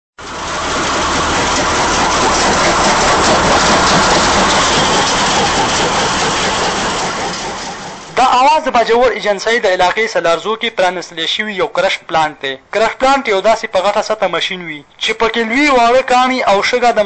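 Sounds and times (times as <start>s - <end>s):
low hum: 0.2s - 8.4s
stone crushing machine noise: 0.2s - 10.2s.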